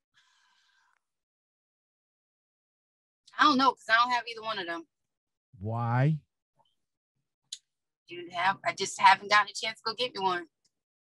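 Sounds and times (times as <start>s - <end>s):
person speaking: 5.6s - 6.2s.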